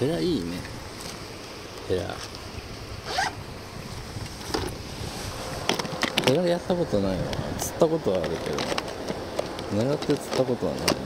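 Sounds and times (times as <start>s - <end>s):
plastic bag zip rasp: 3.0s - 3.4s.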